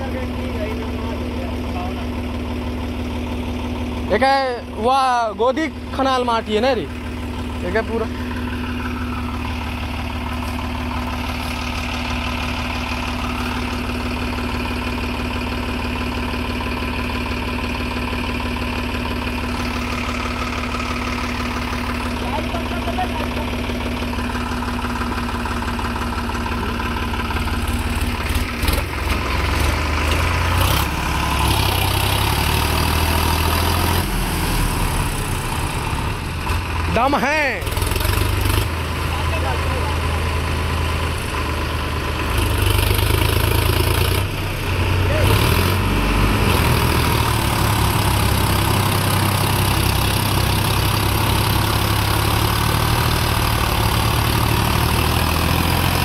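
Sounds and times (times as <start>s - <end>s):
diesel tractor engine running: 0.0s - 56.0s.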